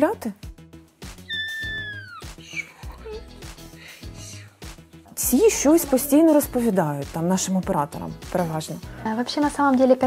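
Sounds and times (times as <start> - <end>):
soft background music: 0.0 - 10.0
kitten meowing: 1.2 - 2.4.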